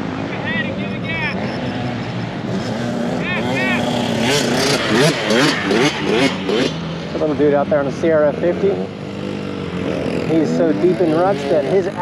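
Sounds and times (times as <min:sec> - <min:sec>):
dirt bike engines droning: 0:00.0 - 0:12.0.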